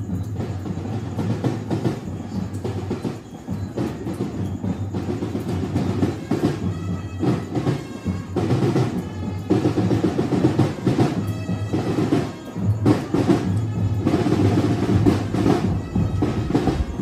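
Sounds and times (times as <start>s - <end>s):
drums keeping steady beat: 0.0s - 17.0s
street band playing: 0.0s - 17.0s.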